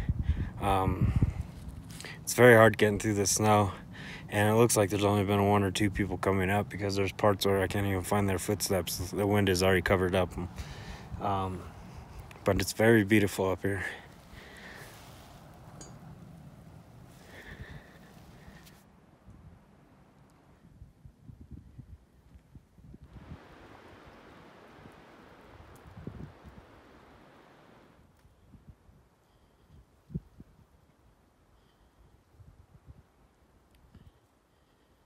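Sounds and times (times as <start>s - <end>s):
faint wind in pine trees: 0.0s - 35.0s.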